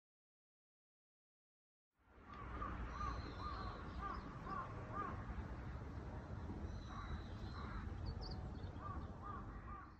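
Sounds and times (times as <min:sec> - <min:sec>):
crow cawing: 0:02.4 - 0:05.2, 0:06.9 - 0:07.9, 0:08.8 - 0:09.9.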